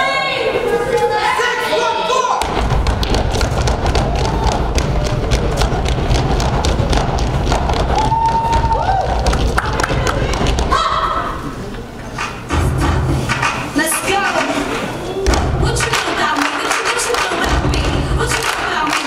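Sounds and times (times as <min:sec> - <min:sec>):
stomps and sharp claps: 0:02.4 - 0:10.9, 0:12.2 - 0:19.0.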